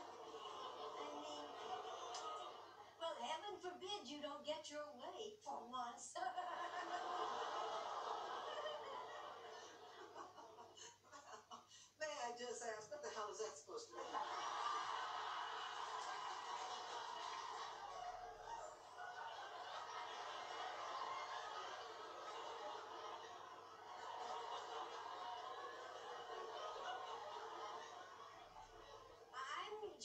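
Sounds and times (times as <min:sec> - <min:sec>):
studio audience laughing: 0:00.0 - 0:03.0, 0:06.2 - 0:11.8, 0:13.9 - 0:29.4.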